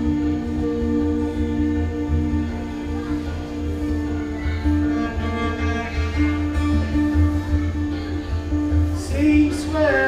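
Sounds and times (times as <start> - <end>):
steady low undertone: 0.0 - 9.6
cello and violin bowed notes: 0.0 - 10.0.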